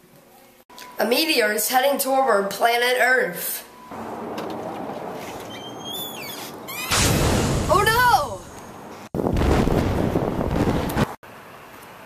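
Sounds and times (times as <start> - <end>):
wind buffeting microphone: 9.1 - 11.1.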